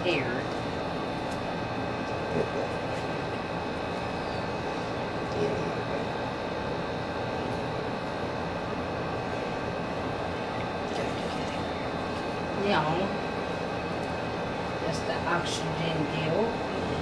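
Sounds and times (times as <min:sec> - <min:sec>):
mechanical hum: 0:00.0 - 0:17.0.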